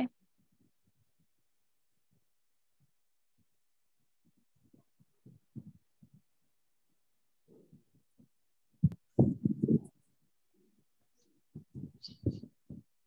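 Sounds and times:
microphone handling bumps: 4.7s - 6.2s, 7.7s - 10.1s, 11.5s - 12.9s.

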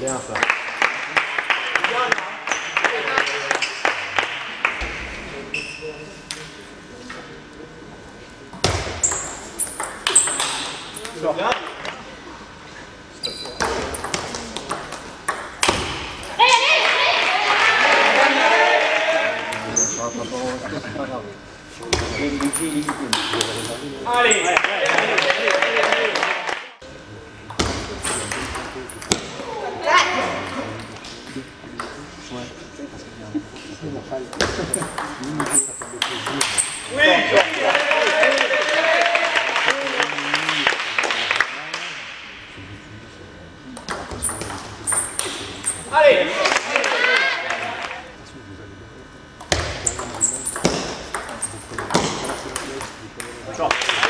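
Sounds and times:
table tennis ball clicks: 9.1s - 12.0s.

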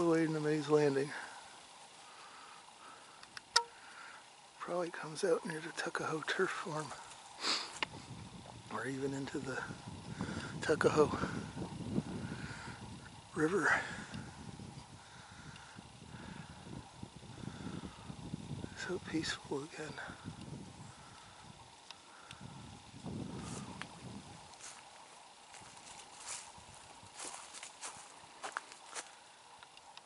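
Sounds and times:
faint outdoor background noise: 0.0s - 30.0s
faint clicks: 3.2s - 4.1s, 15.5s - 15.8s, 21.1s - 22.4s, 29.5s - 30.0s
wind buffeting microphone: 7.8s - 24.6s.

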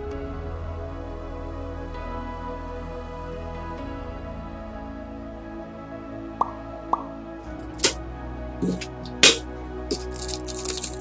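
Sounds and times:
water drops plopping: 6.4s - 7.1s.

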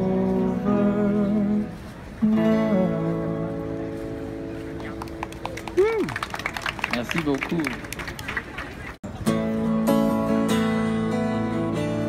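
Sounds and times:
scattered clapping: 4.7s - 9.0s.

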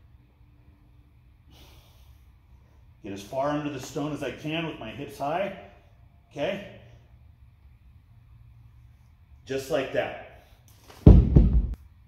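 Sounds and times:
low room hum: 0.0s - 12.0s
man breathing: 1.4s - 3.0s.

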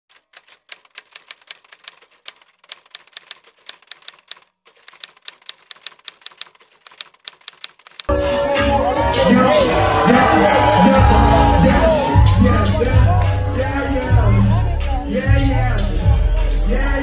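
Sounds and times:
typewriter key clicks: 0.1s - 8.1s.

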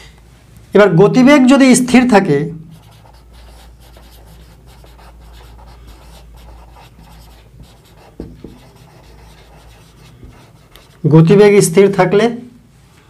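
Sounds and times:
marker writing on whiteboard: 2.7s - 11.1s
man speaking: 11.0s - 12.6s.

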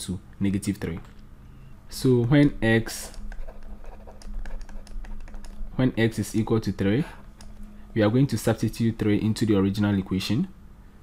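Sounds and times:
faint electrical hum: 0.0s - 11.0s
stylus tapping on pen tablet: 3.0s - 5.6s.

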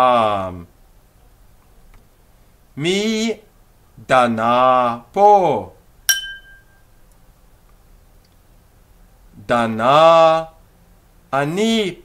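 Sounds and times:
small bell ding: 6.1s - 6.8s.

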